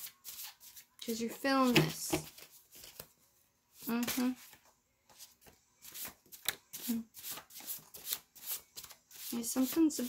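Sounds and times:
cards being shuffled: 1.6 - 3.1, 3.8 - 10.0.

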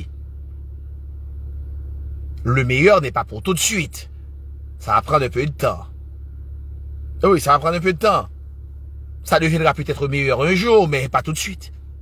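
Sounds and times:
low rumble: 0.0 - 10.2.

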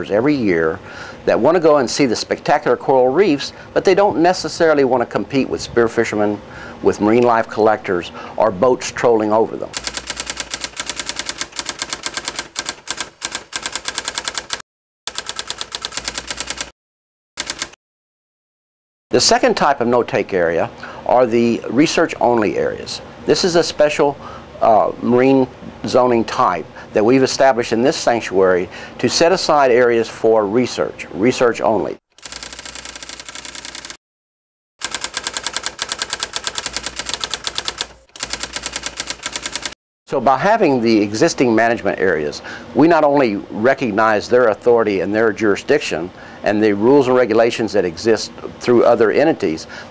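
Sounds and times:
typewriter key clicks: 9.8 - 16.7.

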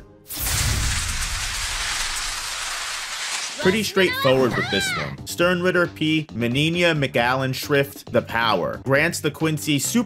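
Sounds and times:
rushing hiss: 0.3 - 3.6.

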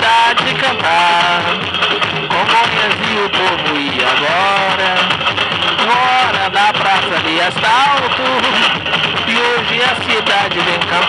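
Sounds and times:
noisy din: 0.0 - 11.0
voices singing samba: 0.0 - 11.0.

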